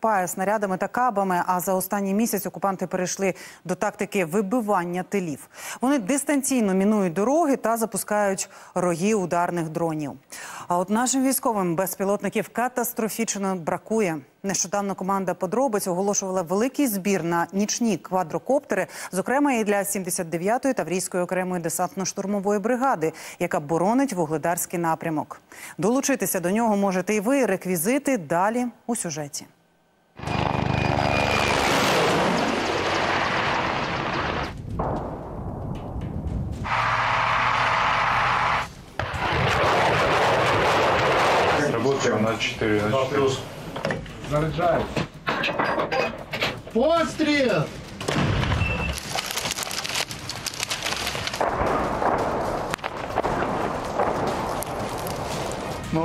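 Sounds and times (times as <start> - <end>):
helicopter flying past low: 30.2 - 32.9
howitzer firing boom: 39.0 - 41.9.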